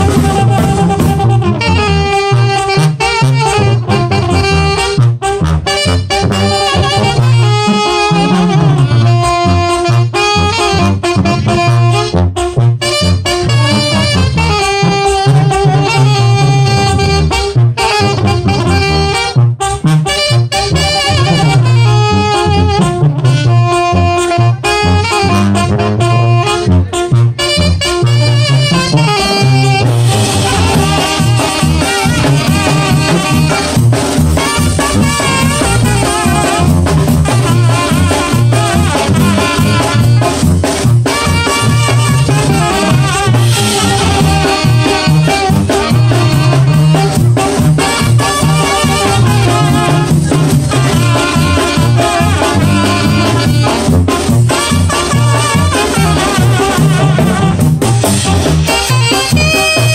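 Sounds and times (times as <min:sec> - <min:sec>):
brass band playing: 0:00.0 - 0:59.9
steady drum beat: 0:00.0 - 0:59.9.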